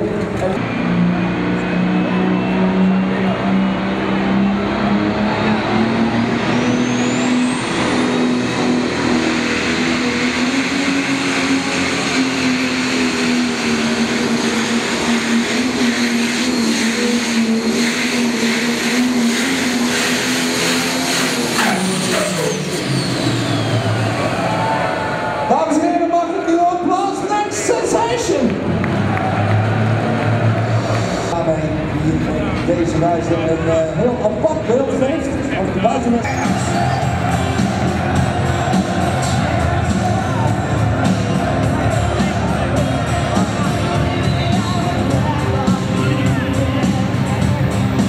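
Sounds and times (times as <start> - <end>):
diesel engine running under load: 0.0 - 48.0
high turbo whine: 0.0 - 48.0.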